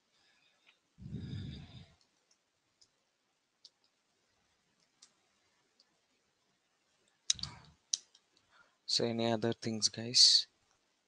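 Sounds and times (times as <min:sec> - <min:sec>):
keyboard or mouse clicks: 0:07.3 - 0:08.2.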